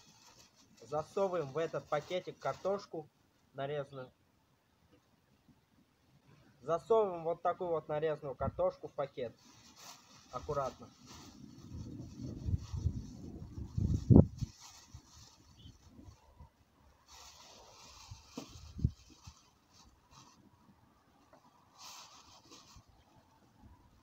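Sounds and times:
plastic bag rustling and crinkling: 0.0s - 2.9s, 9.3s - 16.4s, 17.0s - 20.5s, 21.7s - 24.0s.

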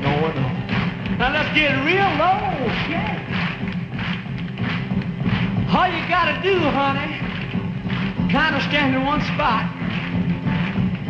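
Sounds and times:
rock and roll band playing: 0.0s - 11.0s.

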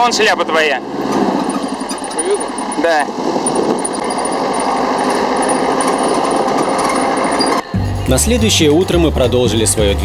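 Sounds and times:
vehicle road noise: 0.0s - 10.0s
music: 7.7s - 10.0s.

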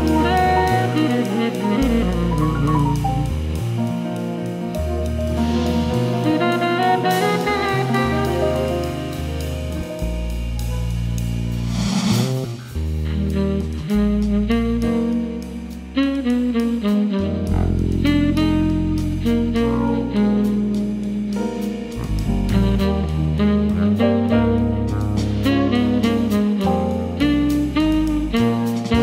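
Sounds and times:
saxophone melody: 0.0s - 11.3s, 12.4s - 29.0s
drums with cymbals: 0.0s - 29.0s
fretless electric bass: 0.0s - 29.0s.

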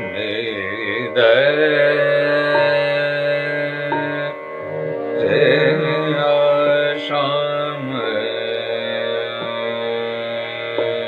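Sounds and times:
man singing classical phrase: 0.0s - 4.4s, 5.2s - 11.0s
steady drone: 0.0s - 11.0s.

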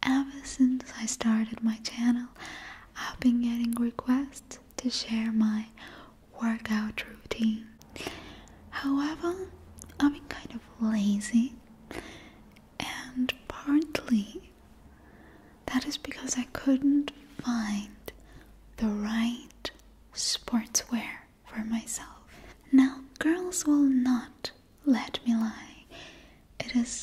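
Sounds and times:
woman whispering: 0.0s - 7.8s, 8.7s - 11.6s, 12.8s - 14.5s, 15.6s - 18.2s, 18.8s - 25.9s, 26.6s - 27.0s.

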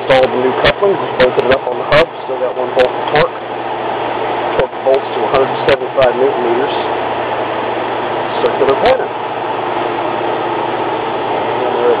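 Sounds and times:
engine-room machinery drone: 0.0s - 12.0s.

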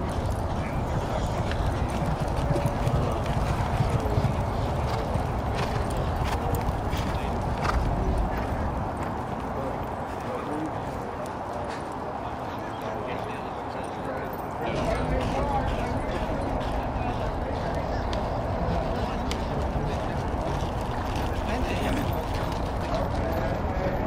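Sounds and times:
hooves on dirt track: 0.0s - 24.0s.

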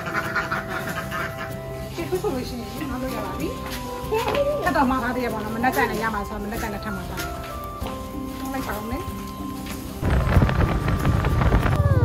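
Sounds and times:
ducks quacking: 0.0s - 1.9s.

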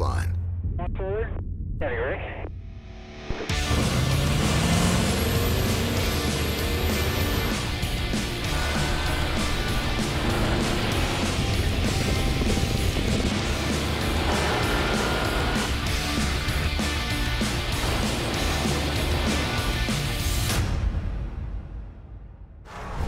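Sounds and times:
background music: 2.4s - 23.0s
truck engines under heavy load: 3.7s - 20.1s.

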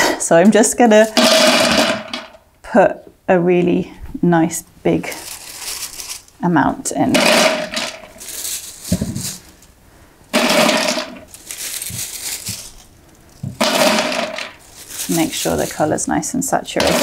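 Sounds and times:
dried cones clattering into metal pot: 0.5s - 2.4s, 7.0s - 9.7s, 10.3s - 17.0s.

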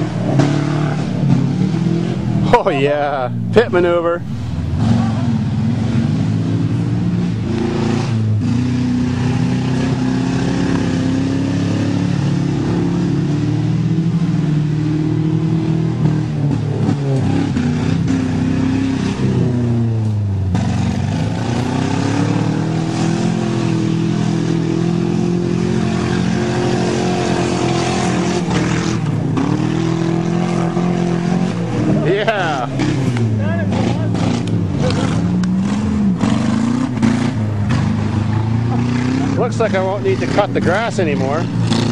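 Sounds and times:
car engines revving: 0.0s - 41.9s.

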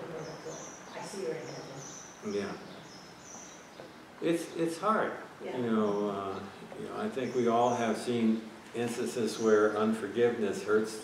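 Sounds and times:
room noise: 0.0s - 11.0s.

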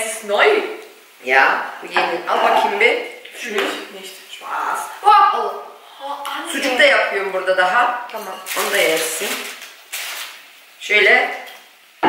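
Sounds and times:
plates and cutlery clinking: 8.1s - 9.2s.

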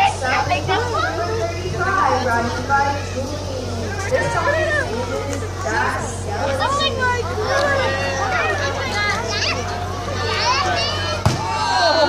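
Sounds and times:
children chattering and calling out: 0.0s - 12.0s
steady low hum: 0.0s - 12.0s.

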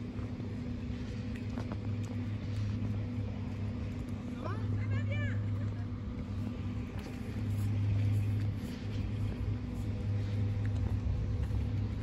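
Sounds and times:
faint steady tones: 0.0s - 12.0s
low mechanical hum: 0.0s - 12.0s.

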